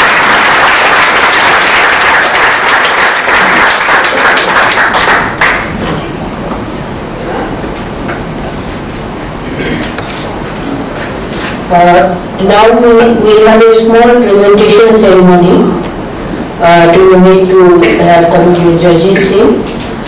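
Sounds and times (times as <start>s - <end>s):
audience applause: 0.0s - 5.8s.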